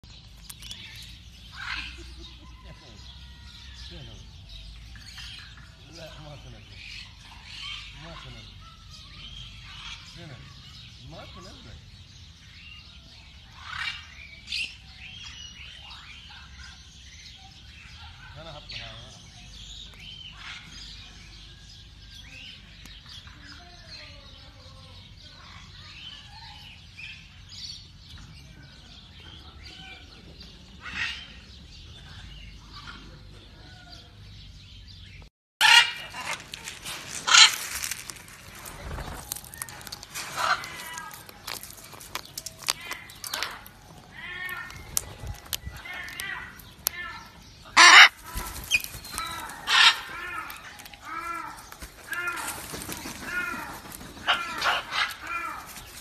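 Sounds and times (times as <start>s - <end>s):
birds chirping and twittering: 0.0s - 56.0s
parrots squawking: 35.6s - 37.8s, 39.5s - 41.6s, 42.2s - 55.7s.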